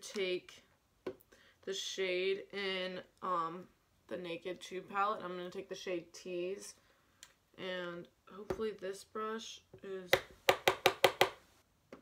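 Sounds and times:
makeup brush tapping hard surface: 10.2 - 11.4.

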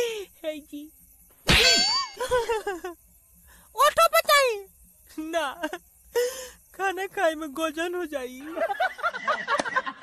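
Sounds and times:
ringing metallic clang: 1.4 - 2.3.

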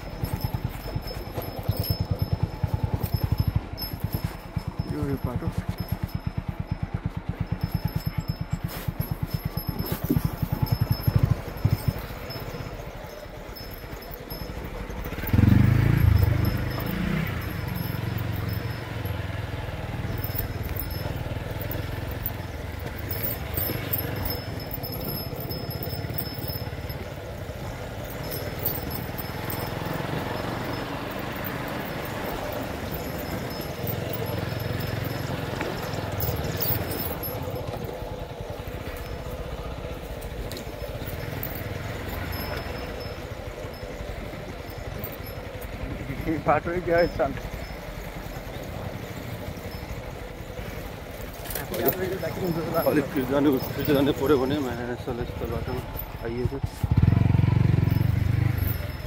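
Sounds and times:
motorcycle engine running: 0.0 - 59.0.

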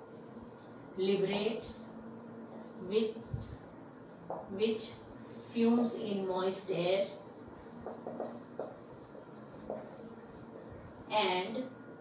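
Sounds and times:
marker writing on whiteboard: 0.0 - 1.8, 2.5 - 11.6.

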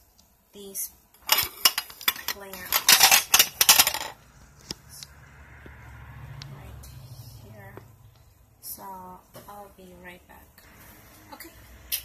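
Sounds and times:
hard objects clattering and knocking: 1.2 - 4.2.

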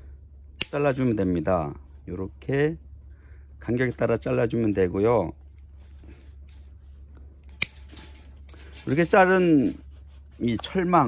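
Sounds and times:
faint blade clicks: 0.6 - 1.1, 7.4 - 9.1
pruning shears snipping plastic: 0.6 - 1.2, 7.4 - 9.8.

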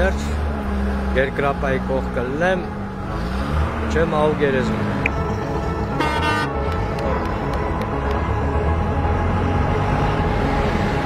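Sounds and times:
bus engine rumbling: 0.0 - 11.0
vehicle horn toot: 5.6 - 7.3.

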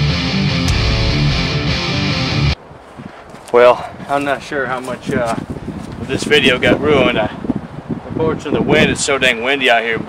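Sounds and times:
rock music with electric guitar: 0.0 - 2.6.

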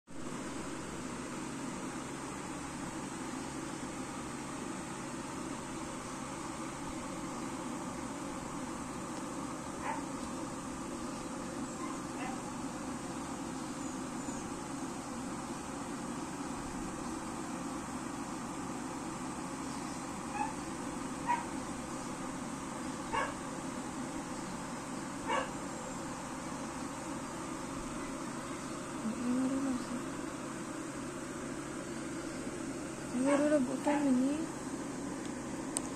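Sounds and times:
steady background hum: 0.1 - 35.9.

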